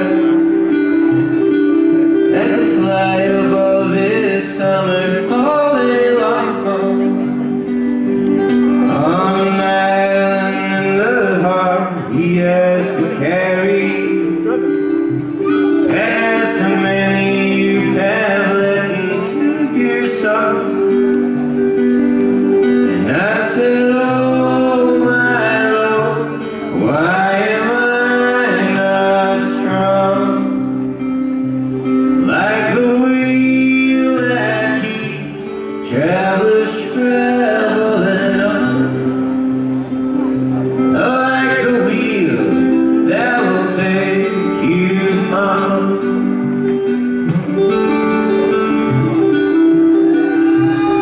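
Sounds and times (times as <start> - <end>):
man singing: 0.0 - 21.7, 22.6 - 51.0
strummed acoustic guitar: 0.0 - 51.0.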